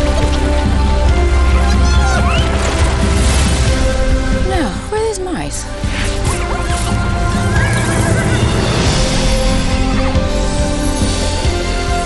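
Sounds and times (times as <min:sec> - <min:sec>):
trailer score music: 0:00.0 - 0:12.0.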